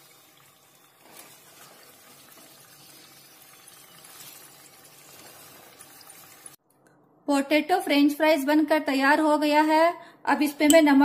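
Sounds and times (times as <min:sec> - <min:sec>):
fries sizzling in hot oil: 0:00.0 - 0:06.6.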